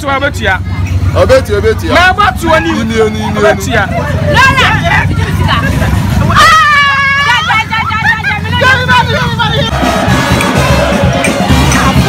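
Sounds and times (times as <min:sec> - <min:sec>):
crowd shouting and calling: 0:00.0 - 0:12.0
quad bike engine running: 0:00.0 - 0:12.0.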